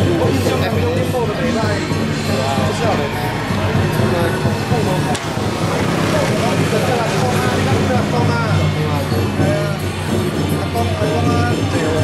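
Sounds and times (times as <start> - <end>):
people's voices: 0.0 - 12.0
scooters approaching: 0.0 - 12.0
vehicle engines running: 0.0 - 12.0.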